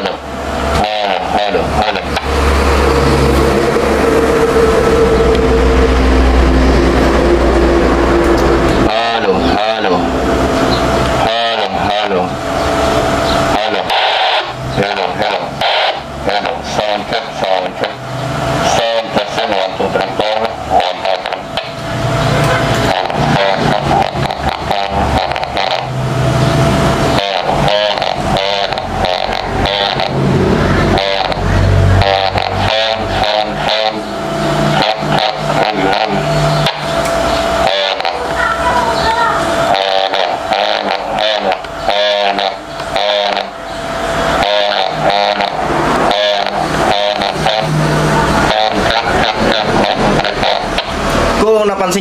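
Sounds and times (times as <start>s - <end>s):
distorted speech over radio: 0.0s - 2.5s, 8.7s - 52.0s.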